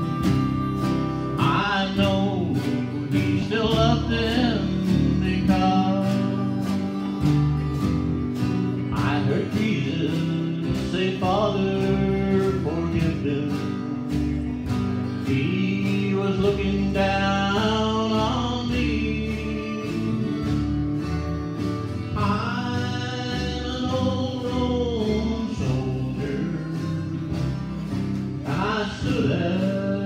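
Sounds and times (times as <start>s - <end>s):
drums steady beat: 0.0s - 30.0s
guitars: 0.0s - 30.0s
harmonica melody: 0.0s - 30.0s.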